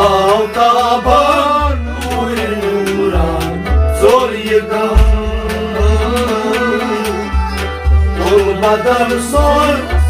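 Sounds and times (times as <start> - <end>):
bowed string instrument: 0.0 - 10.0
harmonium chords: 0.0 - 10.0
person singing: 0.0 - 10.0
drum low strokes: 4.9 - 6.6.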